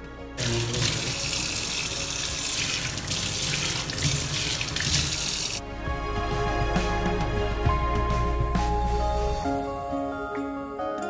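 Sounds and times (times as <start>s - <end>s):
tap water splashing into steel sink: 0.4s - 5.6s.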